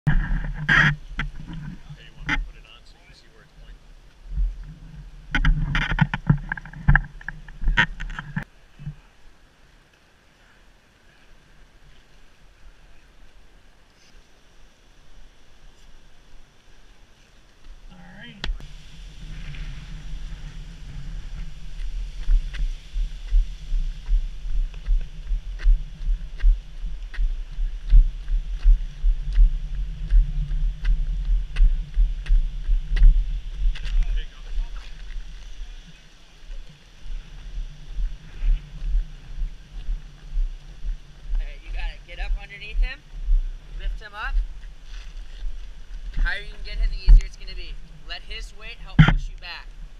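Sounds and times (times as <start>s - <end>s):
wind rumble on microphone: 0.1s - 9.0s, 17.7s - 49.9s
low thumps: 18.4s - 35.3s, 35.9s - 48.2s, 48.8s - 49.9s
heavy boot footsteps: 19.3s - 35.4s, 36.5s - 47.3s.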